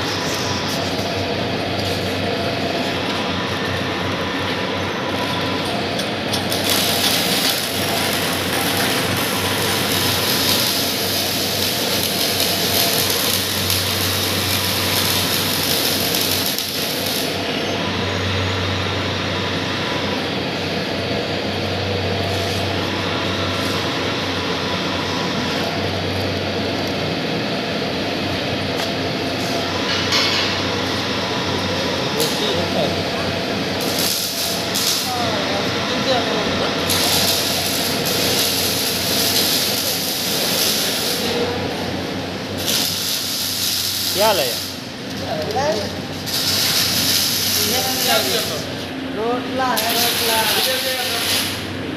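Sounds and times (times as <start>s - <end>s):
grinding machine drone: 0.0s - 51.9s.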